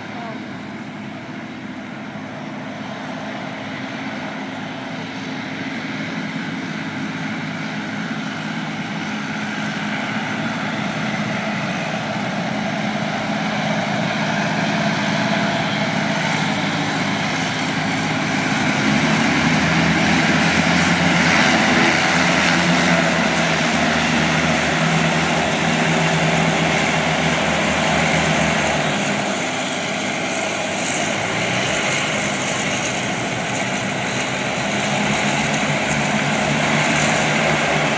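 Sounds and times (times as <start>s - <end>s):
hovercraft engines humming: 0.0s - 37.9s.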